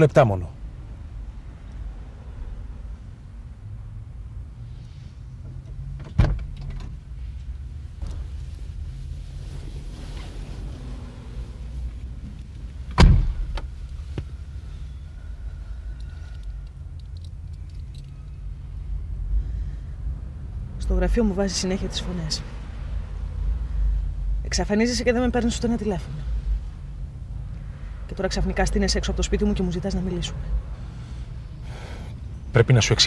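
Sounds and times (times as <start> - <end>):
low steady rumble: 0.0 - 33.0
car door shutting: 6.0 - 7.0, 12.2 - 14.3.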